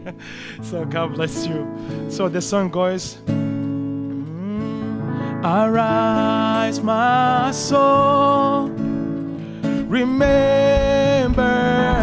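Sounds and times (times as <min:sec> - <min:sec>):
acoustic guitar chords strummed: 0:00.0 - 0:12.0.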